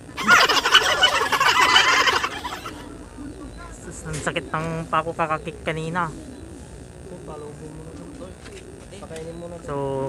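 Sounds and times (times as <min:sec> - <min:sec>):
turkey gobbling: 0:00.0 - 0:04.7.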